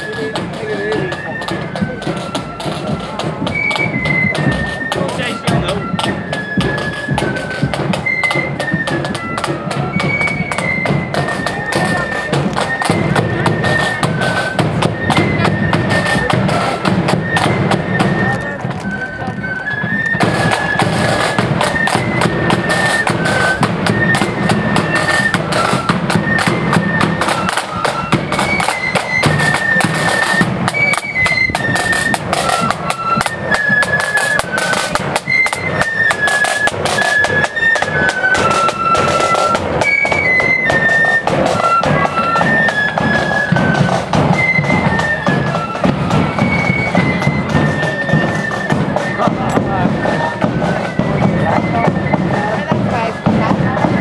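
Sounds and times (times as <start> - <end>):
flutes playing a melody: 0.0 - 54.0
side drums and bass drum: 0.0 - 54.0.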